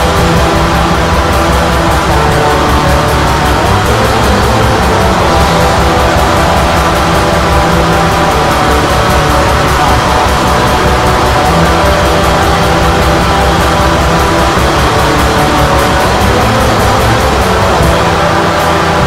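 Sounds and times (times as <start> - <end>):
distorted electric guitars: 0.0 - 19.0
fast drumming: 0.0 - 19.0.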